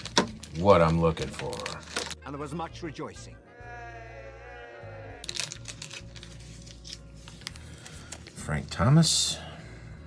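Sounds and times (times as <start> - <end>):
cards and wrappers crinkling: 0.0 - 2.2, 5.2 - 8.8
group of voices cheering: 3.5 - 5.3.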